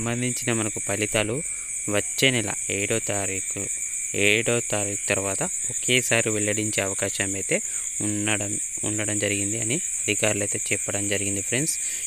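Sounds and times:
high-pitched hiss: 0.0s - 12.0s
man speaking: 0.0s - 12.0s.

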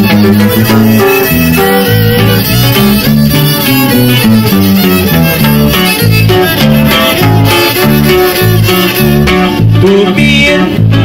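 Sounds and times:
fiddle melody: 0.0s - 10.1s
guitar: 0.0s - 11.0s
low bass notes: 0.0s - 11.0s.

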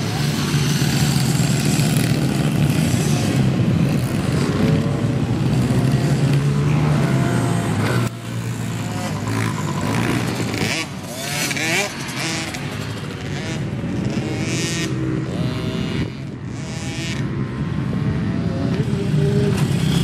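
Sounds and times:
dirt bike engines revving: 0.0s - 20.0s.

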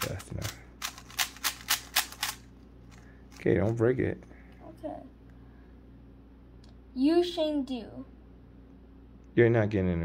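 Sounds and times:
puzzle cube plastic clicks: 0.0s - 2.4s.

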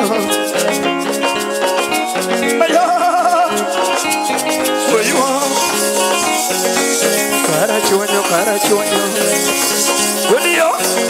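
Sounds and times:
plucked guitar: 0.0s - 11.0s
shaker rhythm: 0.0s - 11.0s
wavering held note: 4.2s - 11.0s.

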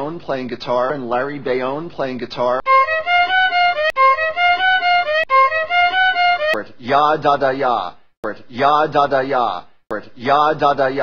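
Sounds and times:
violin bowed phrase: 2.6s - 6.6s.

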